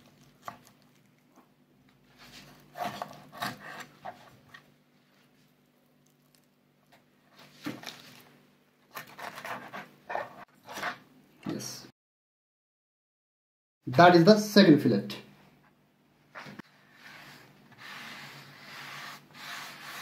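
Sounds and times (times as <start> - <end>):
knife scraping along fish bone: 8.9 - 10.9, 17.0 - 20.0.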